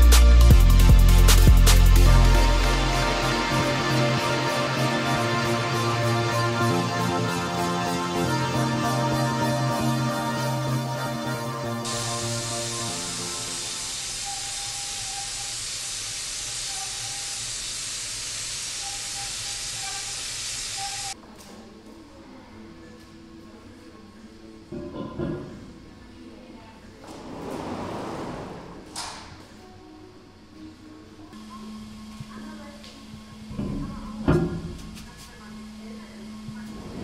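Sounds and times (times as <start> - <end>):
paint spray gun hissing: 11.8 - 21.2
short rush of air: 27.2 - 29.2.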